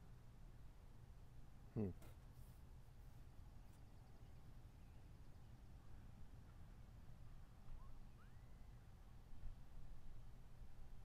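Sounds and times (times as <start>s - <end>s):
faint rising chirp: 7.7s - 8.8s.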